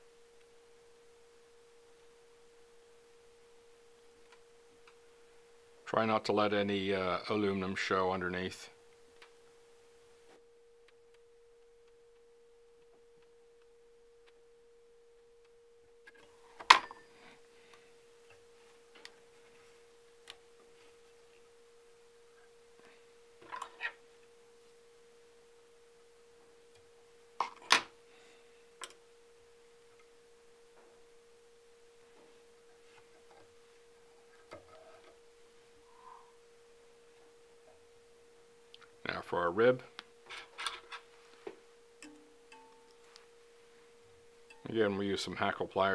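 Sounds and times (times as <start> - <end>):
faint steady hum: 0.0 - 45.9
soft rustles: 16.3 - 21.5, 40.3 - 41.7.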